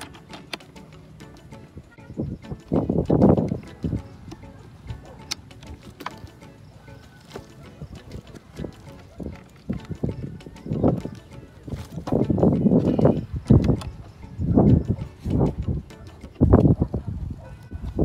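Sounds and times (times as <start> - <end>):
metal clicks and knocks: 0.0 - 1.7.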